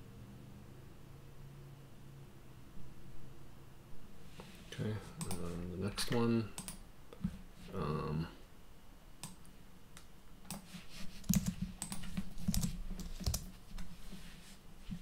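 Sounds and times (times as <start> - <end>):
typing on computer keyboard: 6.6 - 6.8, 10.5 - 13.6.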